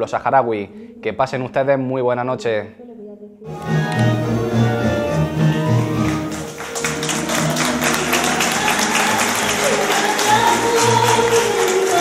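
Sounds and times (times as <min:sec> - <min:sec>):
woman singing: 0:02.8 - 0:12.0
live music: 0:03.5 - 0:12.0
audience clapping along: 0:05.4 - 0:12.0.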